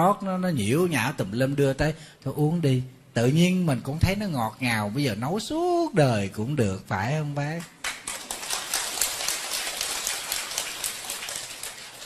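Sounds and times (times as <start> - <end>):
audience applauding: 7.8 - 12.0.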